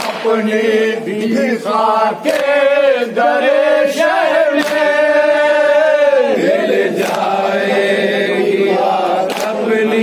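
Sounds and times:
hands slapping chests: 0.0 - 0.4, 2.2 - 2.6, 4.0 - 5.1, 7.0 - 7.4, 9.2 - 9.6
men chanting together: 0.0 - 10.0.

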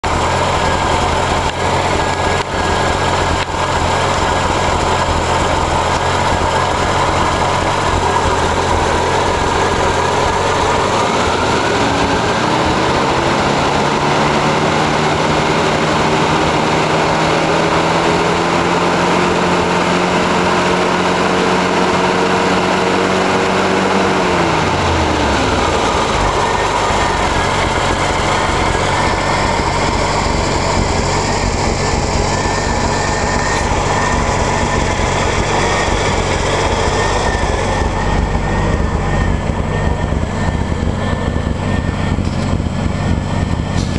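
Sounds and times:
engine idling rough: 0.0 - 43.9
engine revving up: 0.0 - 43.9.

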